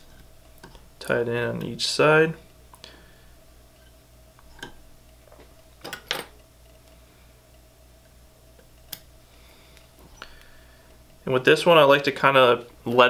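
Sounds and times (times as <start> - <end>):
faint steady hum: 0.0 - 13.0
light clicks and ticks: 6.4 - 9.1.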